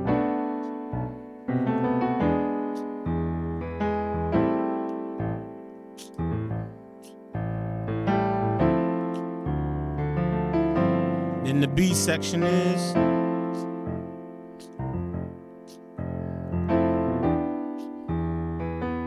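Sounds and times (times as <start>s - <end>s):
piano playing jazz chords: 0.0s - 19.0s.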